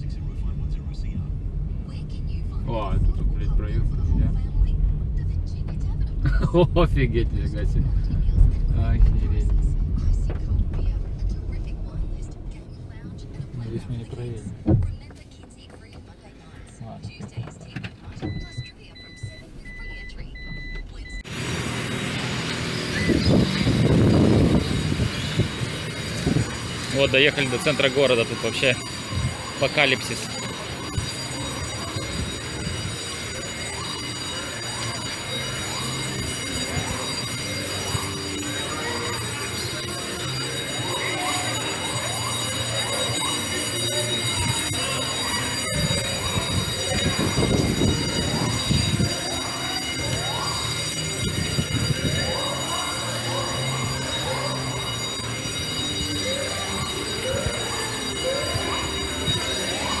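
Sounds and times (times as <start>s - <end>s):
low rumble: 0.0s - 15.1s
alarms whooping: 18.2s - 60.0s
steady high tones: 18.2s - 60.0s.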